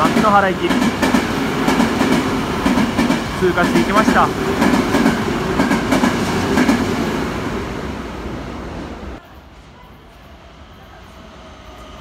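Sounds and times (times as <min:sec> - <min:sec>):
train passing at speed: 0:00.0 - 0:12.0.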